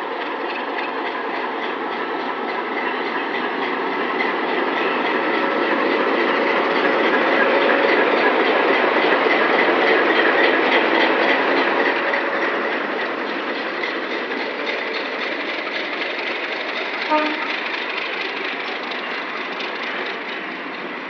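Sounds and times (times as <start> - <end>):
diesel locomotive engine running: 0.0 - 21.0
train wheels on rails: 0.0 - 21.0.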